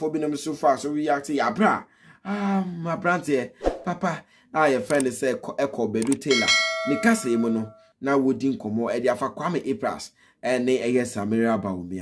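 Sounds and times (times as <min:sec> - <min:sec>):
person talking: 0:00.1 - 0:10.0
bell-like ding: 0:06.3 - 0:07.9.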